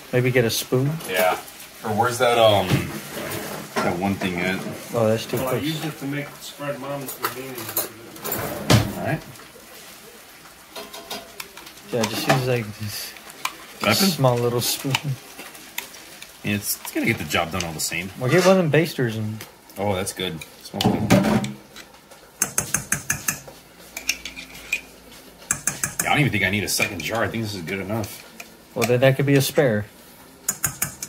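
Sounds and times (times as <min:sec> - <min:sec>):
chicken sizzling in a pan: 0:00.0 - 0:08.1, 0:08.9 - 0:31.0.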